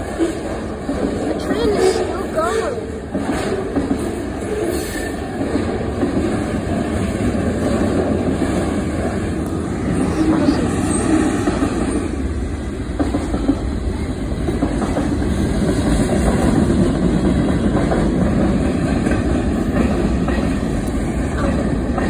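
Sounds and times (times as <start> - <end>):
freight train rumbling past: 0.0 - 22.0
wheels clicking over rail joints: 0.0 - 22.0.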